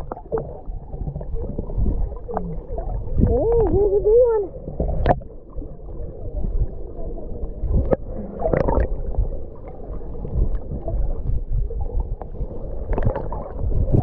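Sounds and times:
bubbling gurgles: 0.0 - 14.0
underwater rumble of moving water: 0.0 - 14.0.

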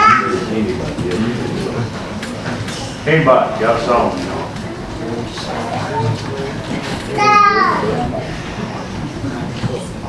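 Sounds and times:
indistinct talking: 0.0 - 10.0.

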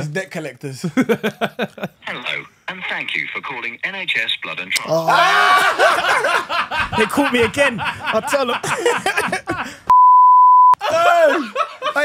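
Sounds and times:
laughter: 0.8 - 2.0, 5.1 - 9.8, 10.8 - 12.0
high electronic censor bleep: 9.9 - 10.8.

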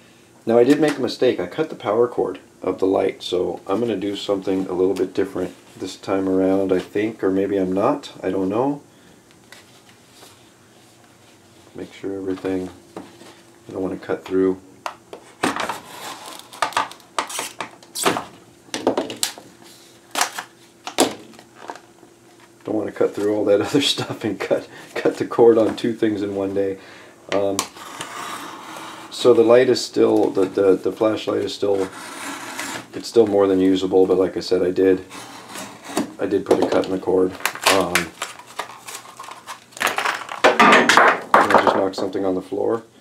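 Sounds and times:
plastic packaging crackling: 36.7 - 40.5.

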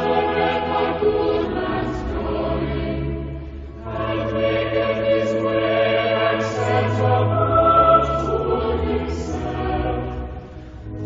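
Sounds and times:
choir singing held notes: 3.8 - 10.4
steady low tone: 6.9 - 10.6.

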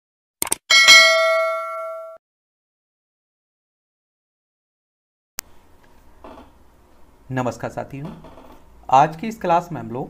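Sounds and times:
bright bell chime: 0.7 - 2.2.

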